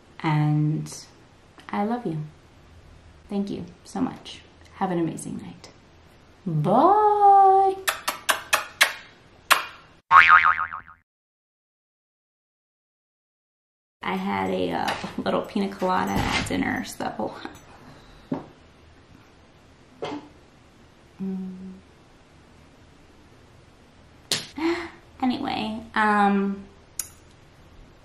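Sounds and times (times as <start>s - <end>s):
lip-smack kiss: 7.8s - 9.8s
wobbling boing sound effect: 10.1s - 11.0s
woman humming: 21.2s - 21.9s.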